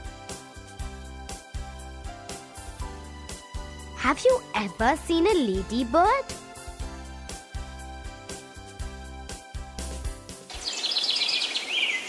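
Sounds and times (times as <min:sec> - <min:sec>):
children's music: 0:00.0 - 0:10.6
small birds chirping: 0:10.5 - 0:12.0.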